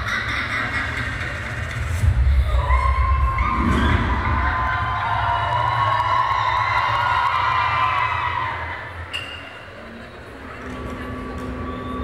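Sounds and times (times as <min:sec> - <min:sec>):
audience screaming and cheering: 0:00.0 - 0:12.0.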